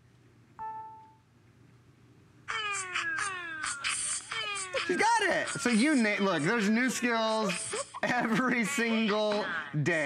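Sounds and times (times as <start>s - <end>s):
voice assistant through small speaker: 2.5s - 10.0s.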